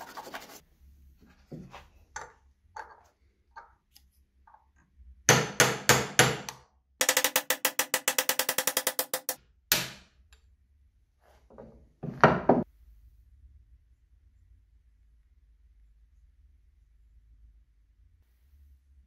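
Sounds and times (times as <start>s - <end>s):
hammer striking steel punch: 5.3s - 10.1s.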